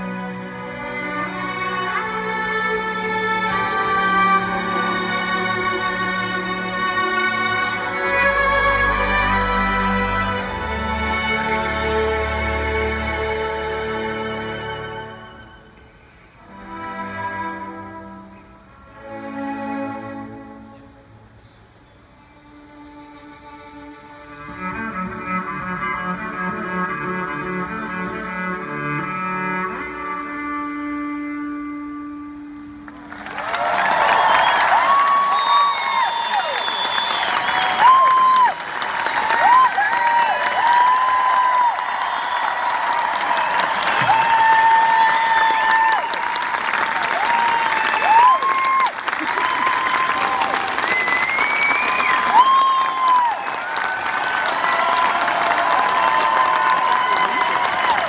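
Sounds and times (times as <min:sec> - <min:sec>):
cello and violin ensemble: 0:00.0 - 0:33.1
audience applauding and cheering: 0:32.8 - 0:58.0
loud whistles: 0:33.8 - 0:40.6, 0:41.2 - 0:46.4, 0:47.4 - 0:58.0.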